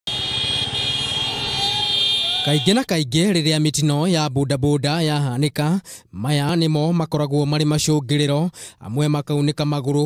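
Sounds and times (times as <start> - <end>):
horns held on high tones: 0.1 - 2.8.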